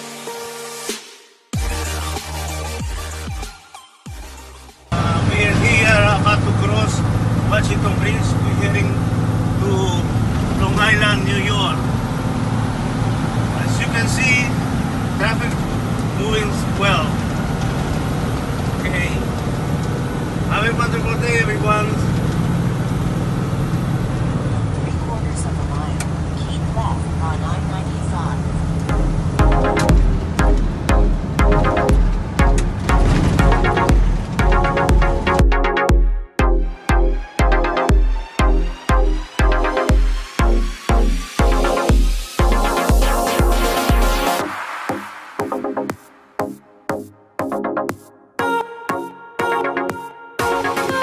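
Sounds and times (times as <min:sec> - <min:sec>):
vehicle engine and road drone: 0:04.9 - 0:35.4.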